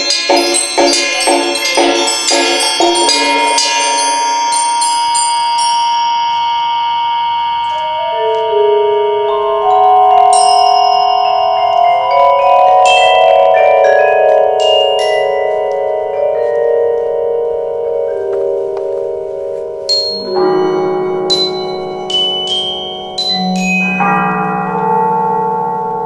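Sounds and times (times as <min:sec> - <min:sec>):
bright high mallet strikes: 0:00.0 - 0:26.0
low wavering held notes: 0:00.0 - 0:26.0
mallet percussion ringing chord: 0:00.0 - 0:26.0.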